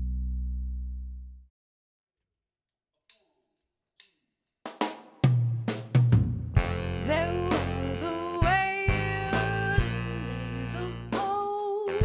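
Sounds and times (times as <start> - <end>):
low bass note: 0.0 - 1.5
drum kit playing: 4.7 - 12.0
horns playing sliding notes: 6.6 - 12.0.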